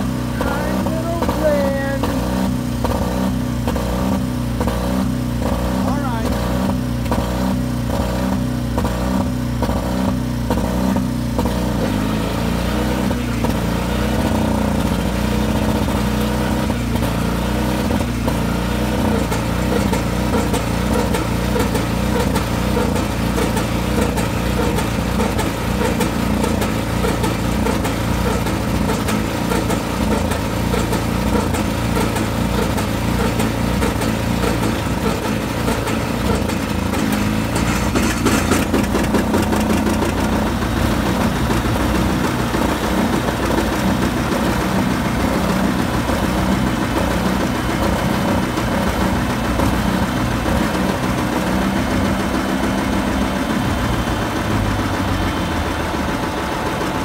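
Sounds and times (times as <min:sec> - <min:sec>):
small engine cranking diesel: 0:00.0 - 0:57.0.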